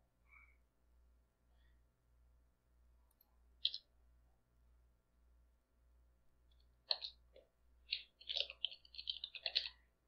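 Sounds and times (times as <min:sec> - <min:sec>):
faint pulsing low hum: 0:00.0 - 0:10.0.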